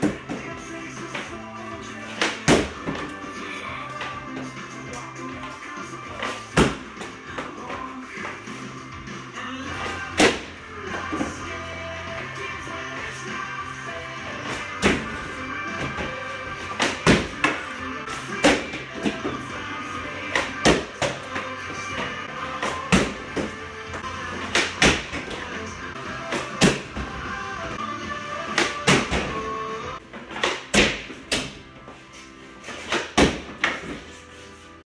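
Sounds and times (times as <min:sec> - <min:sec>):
background music: 0:00.0 - 0:34.8
hockey stick striking puck: 0:02.1 - 0:03.1, 0:14.5 - 0:19.3, 0:24.4 - 0:25.4, 0:28.5 - 0:29.4, 0:32.7 - 0:34.0
puck hitting cardboard board: 0:02.1 - 0:03.1, 0:06.2 - 0:07.5, 0:09.8 - 0:11.3, 0:14.5 - 0:19.4, 0:20.2 - 0:21.5, 0:22.5 - 0:23.6, 0:24.3 - 0:25.5, 0:28.5 - 0:29.4, 0:32.7 - 0:34.0.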